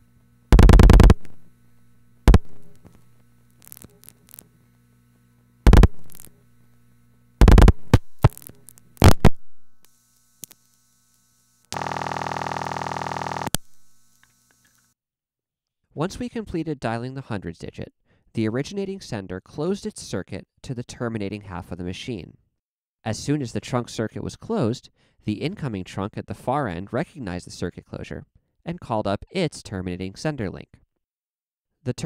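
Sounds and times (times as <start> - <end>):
buzzing tone: 0.0 - 14.9.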